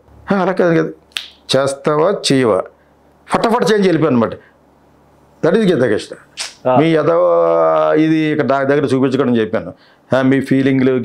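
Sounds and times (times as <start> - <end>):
man speaking: 5.4 - 11.0
sharp click: 6.4 - 6.6.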